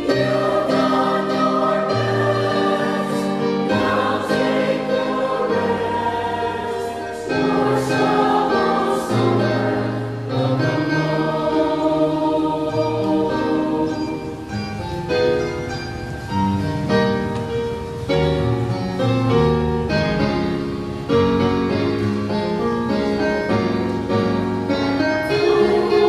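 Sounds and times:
mixed choir singing: 0:00.0 - 0:14.5, 0:25.2 - 0:26.0.

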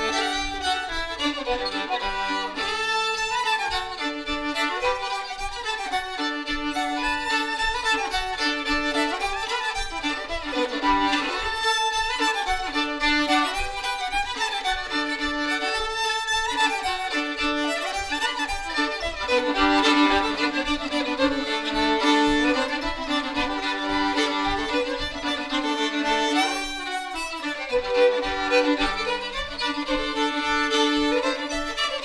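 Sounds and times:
fiddles playing a tune: 0:00.0 - 0:32.0.

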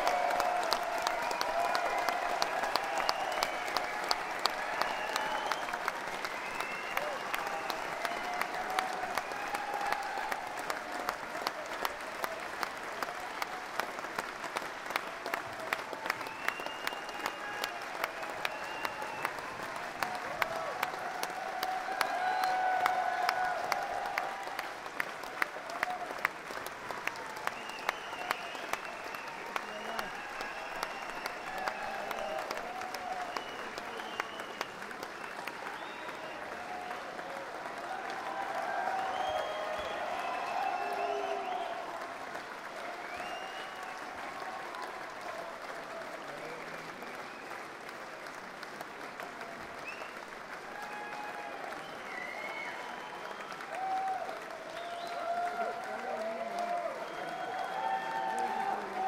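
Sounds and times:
audience clapping: 0:00.0 - 0:59.0
crowd shouts: 0:20.0 - 0:24.6, 0:36.5 - 0:42.0, 0:53.7 - 0:59.0.

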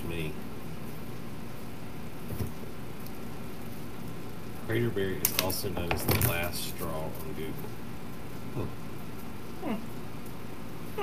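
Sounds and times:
air conditioner hum: 0:00.0 - 0:11.0.

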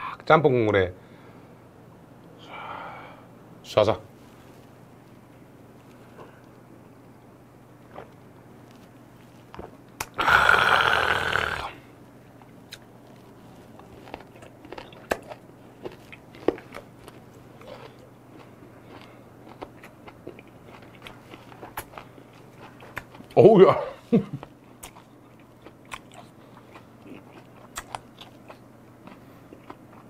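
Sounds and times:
low steady hum: 0:00.0 - 0:30.0
man chewing with wet crunches: 0:07.8 - 0:11.6, 0:12.4 - 0:23.5, 0:24.3 - 0:30.0.

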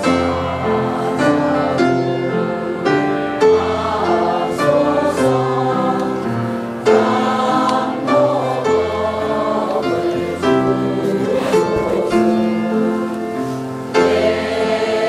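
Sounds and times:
congregation singing a hymn: 0:00.0 - 0:15.0
keyboard accompaniment: 0:00.0 - 0:15.0.

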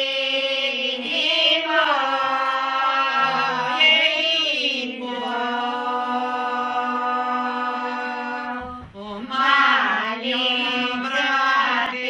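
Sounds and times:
unaccompanied folk singing: 0:00.0 - 0:12.0.

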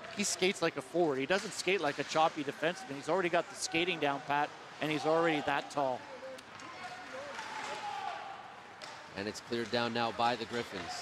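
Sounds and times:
hockey stick hitting puck: 0:06.5 - 0:07.9.

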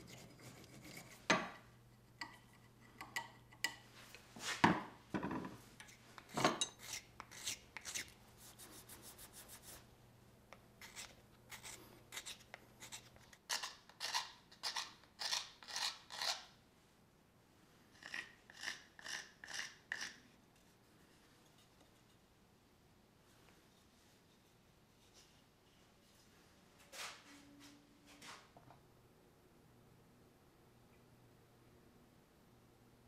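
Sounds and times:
knife scraping wood: 0:00.0 - 0:01.5, 0:05.8 - 0:09.8, 0:10.8 - 0:16.5, 0:18.0 - 0:20.8.

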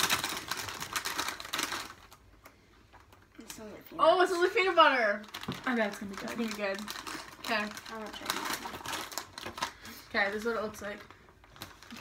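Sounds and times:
foil snack bag crinkling: 0:00.0 - 0:03.6, 0:04.5 - 0:12.0.

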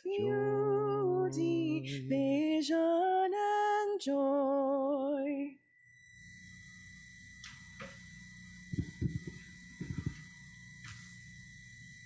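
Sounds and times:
faint high tone: 0:00.0 - 0:02.3
sound system hiss and hum: 0:06.1 - 0:12.0
soft low thumps: 0:08.7 - 0:10.3.

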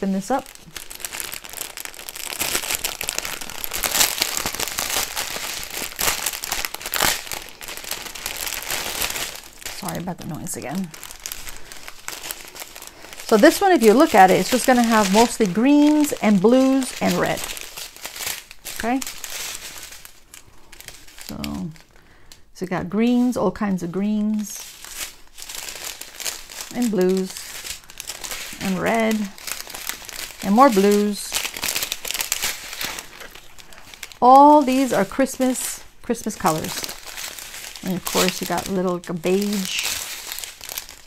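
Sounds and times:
plastic packaging crinkling: 0:00.0 - 0:41.0.

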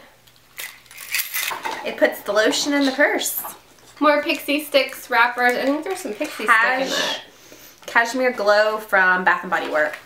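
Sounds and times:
keys clinking in a purse: 0:00.6 - 0:01.6.

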